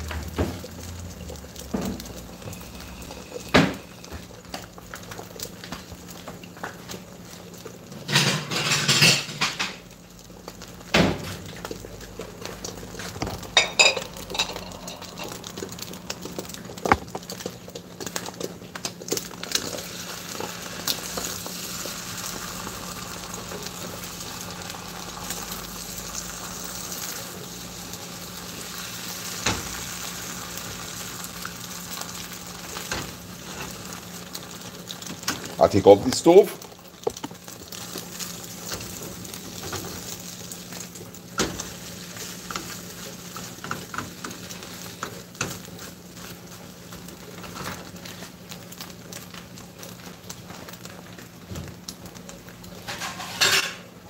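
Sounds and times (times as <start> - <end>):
eggs sizzling in a frying pan: 0.0 - 54.0.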